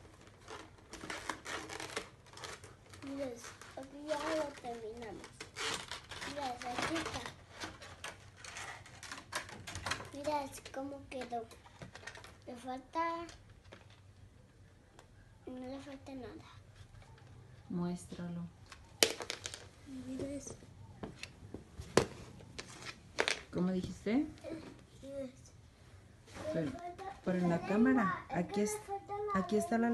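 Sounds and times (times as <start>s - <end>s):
plastic bag crinkling: 0.0s - 10.8s.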